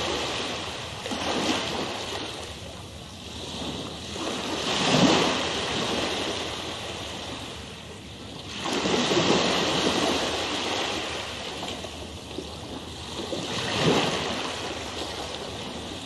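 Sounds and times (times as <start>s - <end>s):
rushing water like surf: 0.0s - 16.0s.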